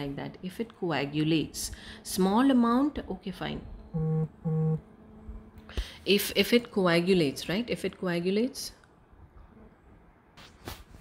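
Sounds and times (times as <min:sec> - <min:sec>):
phone notification buzzes: 0:04.0 - 0:04.8.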